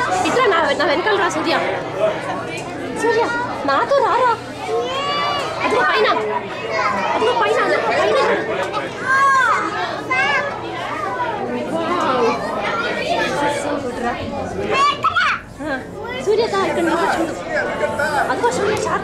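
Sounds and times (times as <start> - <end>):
children's voices: 0.0 - 19.0
people talking: 0.0 - 19.0.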